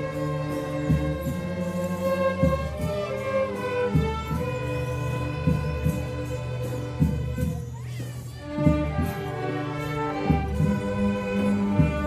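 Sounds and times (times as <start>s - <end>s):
violins playing slow melody: 0.0s - 7.4s, 8.3s - 12.0s.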